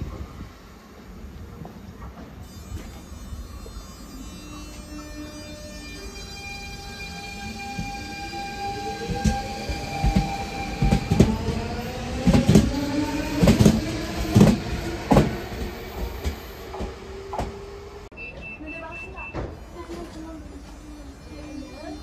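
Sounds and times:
electric train motor whine: 2.4s - 18.1s, 19.6s - 22.0s
train wheels knocking over rail joints: 13.4s - 17.6s.

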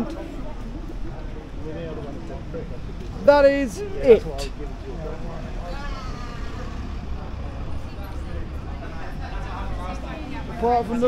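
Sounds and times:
faint voices of passers-by: 0.0s - 11.0s
low rumble of traffic: 0.0s - 11.0s.

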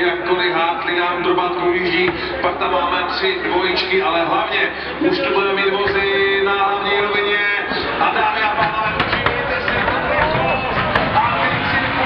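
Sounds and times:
crowd noise: 0.0s - 12.0s
music over loudspeakers: 0.0s - 12.0s
voice over loudspeakers: 0.0s - 12.0s.

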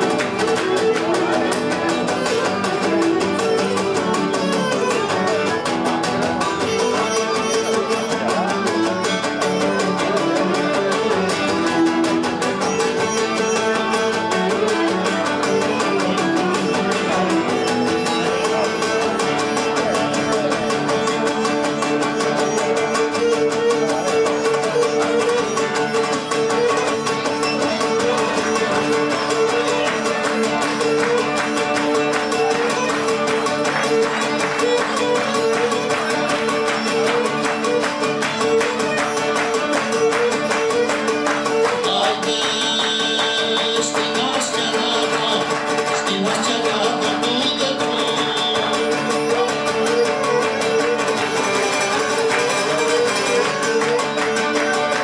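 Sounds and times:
plucked lutes: 0.0s - 55.0s.

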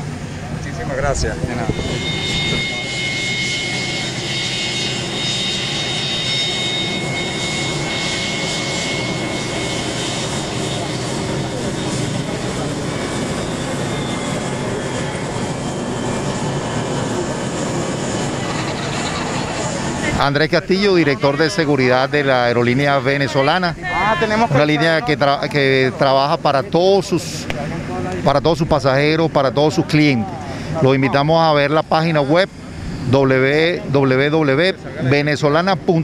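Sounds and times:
jet engines rushing: 0.0s - 36.0s
thin high engine whine: 0.0s - 36.0s.

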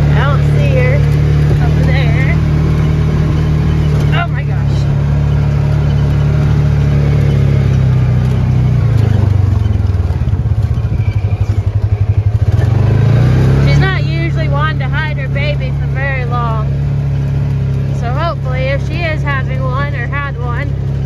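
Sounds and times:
vehicle engine running: 0.0s - 21.0s.

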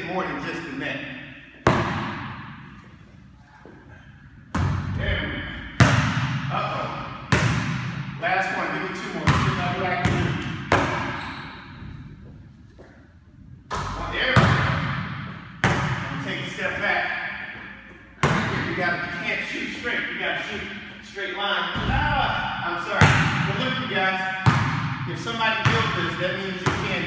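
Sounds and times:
basketball bouncing on hardwood: 9.3s - 11.1s.

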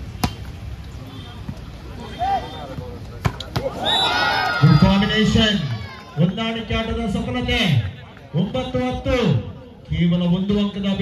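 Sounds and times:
volleyball hit by hand: 0.2s - 0.5s.

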